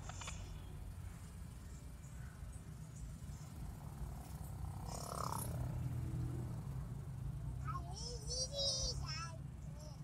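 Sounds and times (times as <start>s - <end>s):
car engine rumble: 0.0s - 10.0s
road noise inside car: 0.0s - 10.0s.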